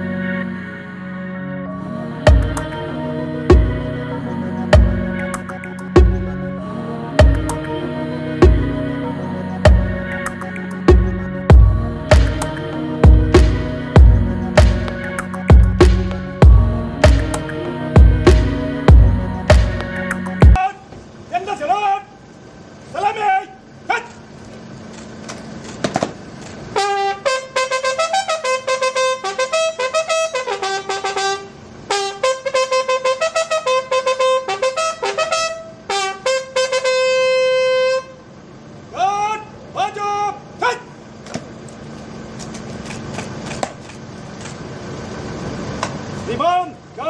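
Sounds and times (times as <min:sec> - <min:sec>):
person shouting commands: 0:20.6 - 0:22.2, 0:22.9 - 0:24.2, 0:38.9 - 0:41.0, 0:46.3 - 0:47.0
bugle call: 0:26.8 - 0:38.3.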